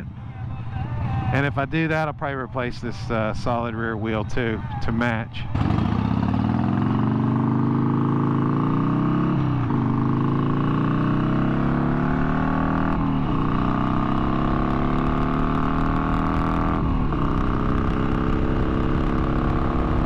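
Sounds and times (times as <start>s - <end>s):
motorcycle engine accelerating: 5.4s - 20.0s.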